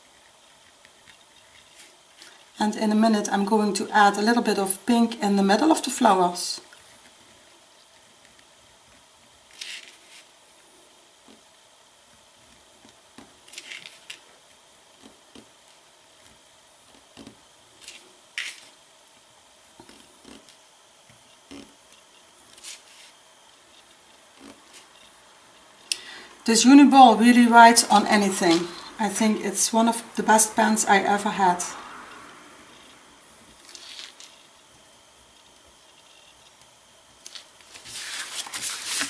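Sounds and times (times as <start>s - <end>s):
gel pen ticking and scratching: 19.8s - 22.2s.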